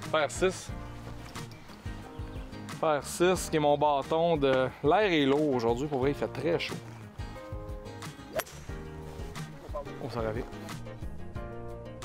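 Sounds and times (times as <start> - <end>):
background music: 0.0 - 12.0
golf club striking ball: 8.2 - 9.0.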